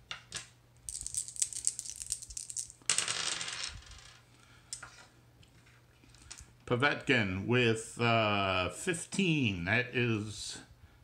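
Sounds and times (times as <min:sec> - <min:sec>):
dice clattering on a game board: 0:00.1 - 0:04.2
dice rattling in a hand: 0:00.9 - 0:04.1.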